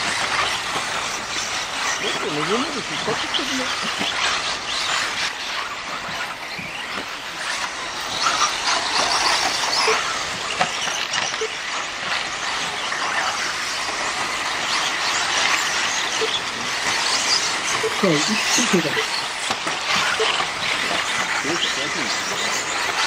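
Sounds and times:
high-pitched motor whine: 0:00.0 - 0:23.0
tyres hissing on dirt: 0:00.0 - 0:23.0.

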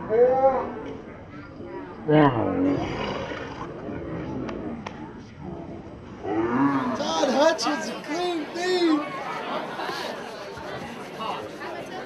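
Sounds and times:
crowd murmur: 0:00.0 - 0:12.0
man shouting: 0:07.0 - 0:09.0.

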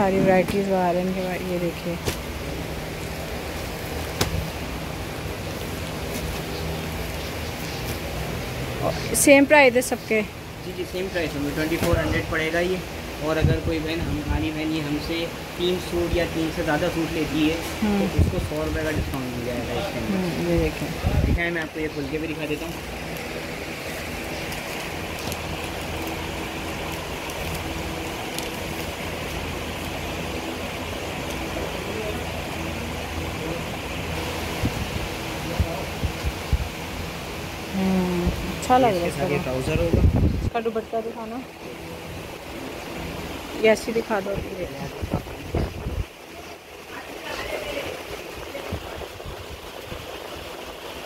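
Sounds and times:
background hum and hiss: 0:00.0 - 0:51.0.

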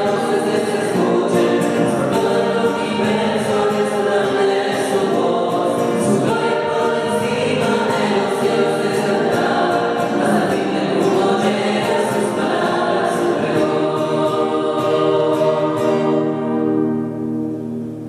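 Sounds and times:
women's choir singing a hymn: 0:00.0 - 0:17.2.

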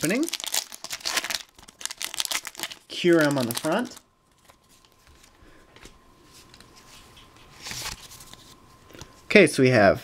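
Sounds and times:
foil wrapper rustling: 0:00.0 - 0:05.2.

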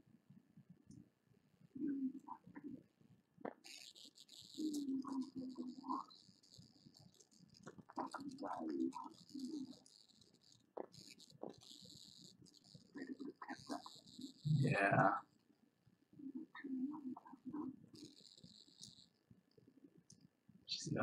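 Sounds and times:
hissing noise: 0:03.5 - 0:15.1
muffled voices: 0:07.9 - 0:09.7, 0:14.5 - 0:15.2.

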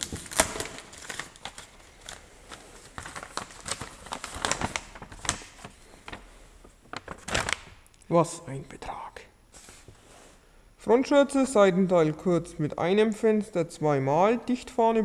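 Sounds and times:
plastic pouch tearing open: 0:00.0 - 0:06.2
plastic and paper crinkling: 0:00.0 - 0:07.8.

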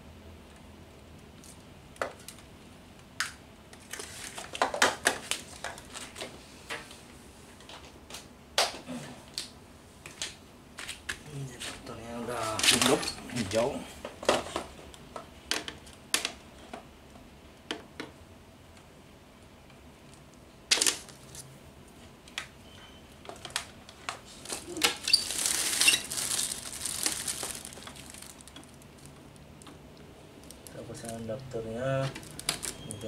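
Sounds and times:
plastic wrapping crinkling: 0:03.8 - 0:06.3, 0:12.3 - 0:13.6, 0:23.3 - 0:33.0.

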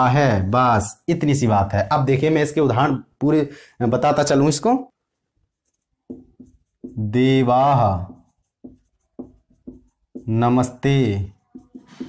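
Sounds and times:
marker writing on whiteboard: 0:05.1 - 0:12.0.

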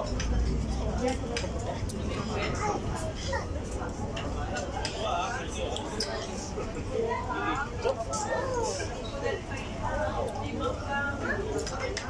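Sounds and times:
indistinct conversation: 0:00.0 - 0:12.0.

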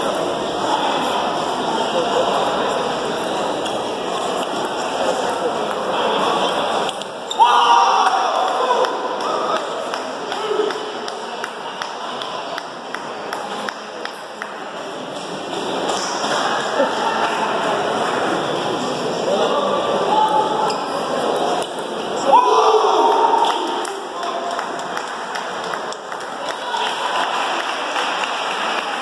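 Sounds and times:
voices in a hall: 0:00.0 - 0:29.0.

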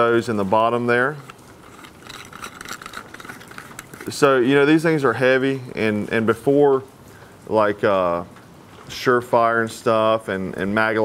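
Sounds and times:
plastic flashlight handling: 0:01.2 - 0:04.1.

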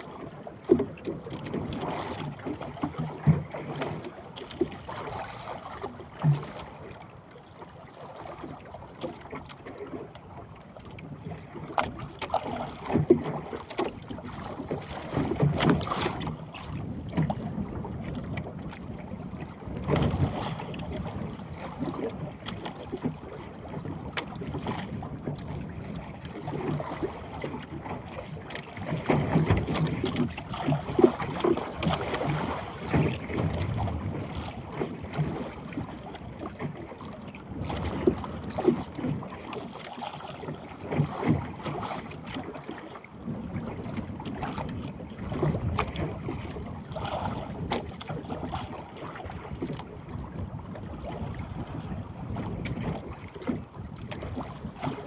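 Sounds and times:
water slapping boat hull: 0:00.0 - 0:55.0
wind buffeting microphone: 0:43.2 - 0:55.0.

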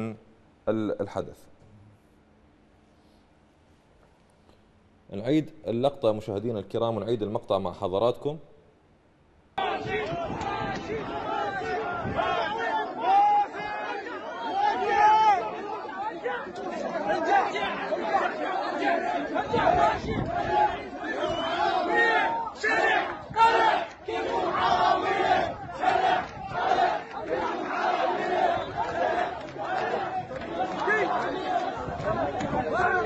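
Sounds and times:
crowd of protesters shouting: 0:09.6 - 0:33.0.

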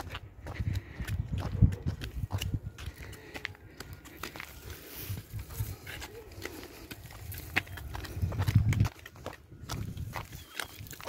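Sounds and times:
footsteps on paved path: 0:00.0 - 0:11.0.

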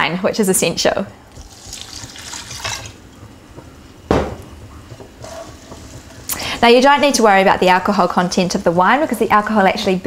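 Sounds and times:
wine pouring into a pan: 0:01.3 - 0:03.0.

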